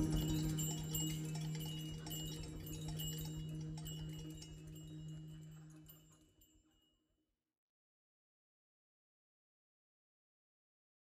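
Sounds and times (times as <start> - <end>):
held low tone: 0.0 - 6.1
hand percussion ticking and ringing: 0.0 - 6.9.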